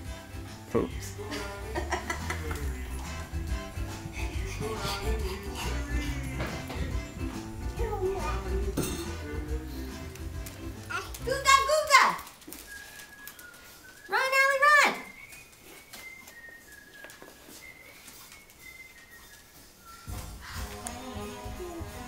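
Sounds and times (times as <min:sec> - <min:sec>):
background music with bass line: 0:00.0 - 0:10.9.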